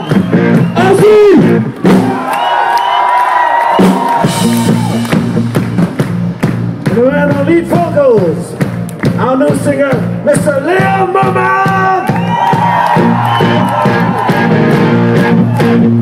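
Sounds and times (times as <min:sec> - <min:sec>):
live rock band playing: 0:00.0 - 0:02.4, 0:03.6 - 0:16.0.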